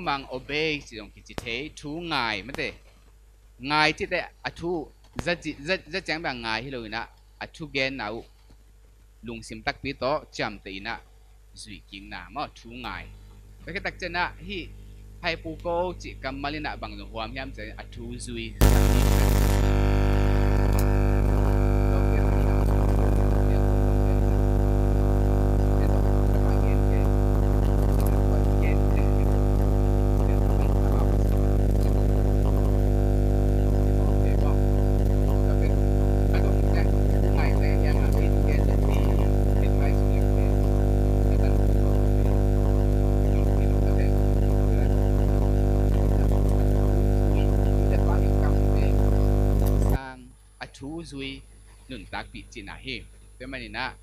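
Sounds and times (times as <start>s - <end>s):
voice at microphone: 0.0s - 2.8s, 3.6s - 8.3s, 11.6s - 54.0s
loud electrical mains hum: 0.0s - 54.0s
loud droning buzz: 18.6s - 50.0s.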